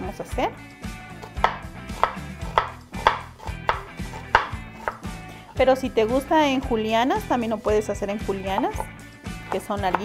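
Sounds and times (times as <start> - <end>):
knife chopping on cutting board: 1.2 - 5.2, 8.5 - 10.0.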